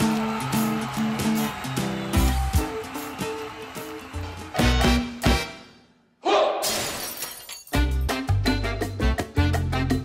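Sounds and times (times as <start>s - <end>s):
upbeat music: 0.0s - 5.8s, 7.7s - 10.0s.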